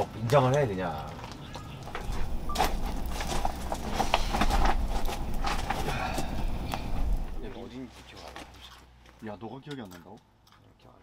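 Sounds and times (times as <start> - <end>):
low rumble of flame: 0.0 - 8.5
firewood crackling and popping: 0.0 - 10.7.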